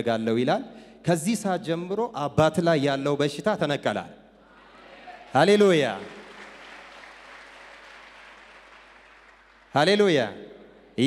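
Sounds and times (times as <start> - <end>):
congregation applauding: 4.8 - 10.3.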